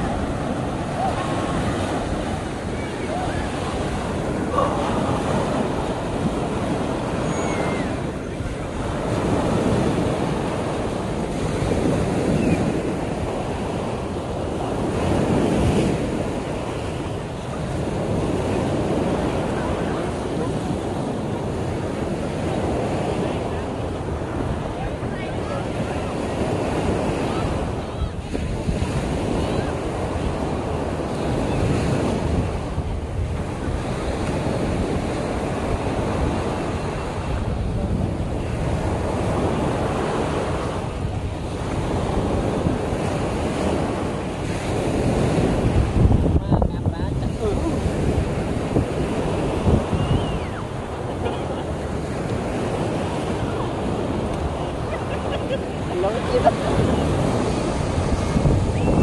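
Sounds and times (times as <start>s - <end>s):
sea surf breaking on beach: 0.0s - 59.0s
wind buffeting microphone: 0.0s - 59.0s.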